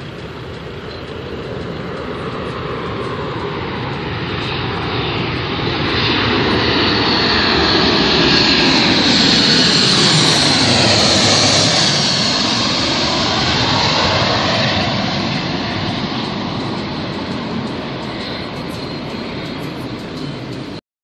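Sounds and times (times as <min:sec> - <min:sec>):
jet airliner passing overhead: 0:00.0 - 0:20.8.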